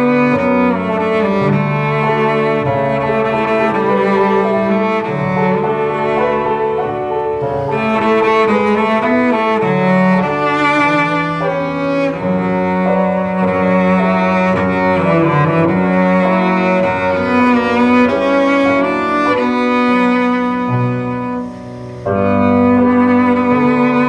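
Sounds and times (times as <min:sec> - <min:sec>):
cello bowed melody: 0:00.0 - 0:24.0.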